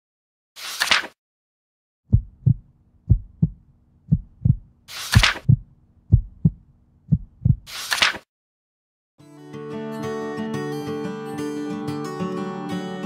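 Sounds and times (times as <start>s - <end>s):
heartbeat double thumps: 2.1s - 7.7s.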